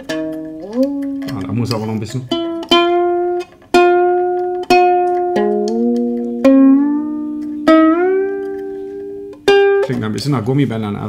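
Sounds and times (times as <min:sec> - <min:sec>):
ukulele strummed: 0:00.0 - 0:10.3.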